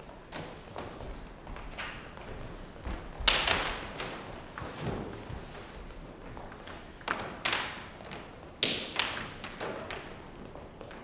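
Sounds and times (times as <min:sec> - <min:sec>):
sharp knocks with echoes: 0:02.9 - 0:05.2, 0:07.1 - 0:10.1.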